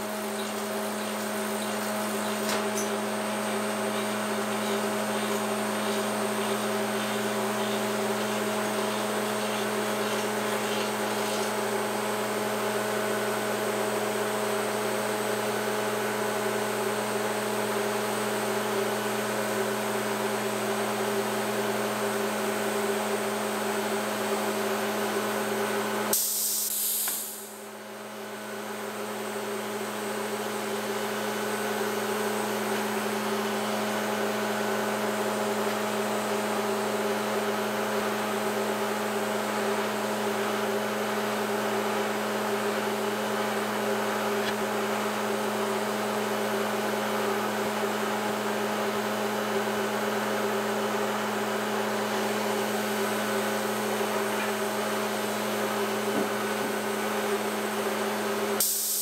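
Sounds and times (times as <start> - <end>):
woodworking machinery humming: 0.0 - 26.1, 27.4 - 58.6.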